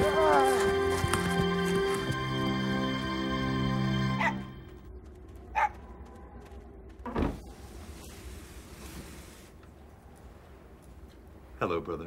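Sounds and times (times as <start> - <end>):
small dog barking: 5.5 - 5.8.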